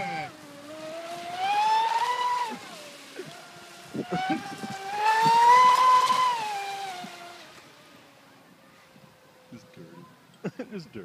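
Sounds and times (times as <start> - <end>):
model boat motor whining: 0.0 - 10.4.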